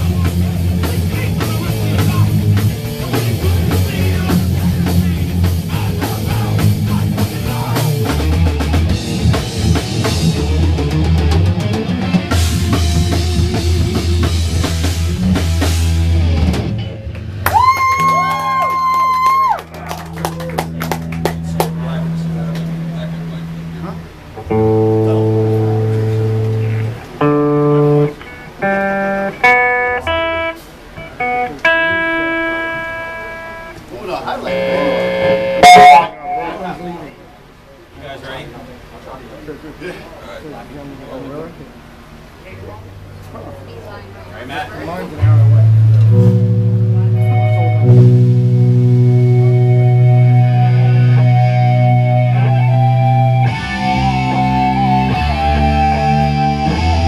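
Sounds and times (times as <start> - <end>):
heavy metal band playing: 0.0 - 17.7, 20.9 - 37.2, 45.2 - 57.0
electric guitar notes ringing: 21.3 - 37.5, 45.2 - 57.0.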